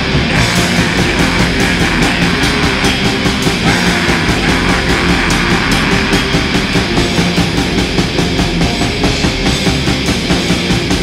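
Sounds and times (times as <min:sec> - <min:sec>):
black metal music: 0:00.0 - 0:11.0.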